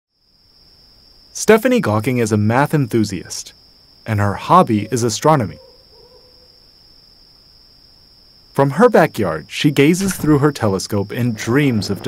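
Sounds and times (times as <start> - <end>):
crickets trilling: 0.2 - 12.0.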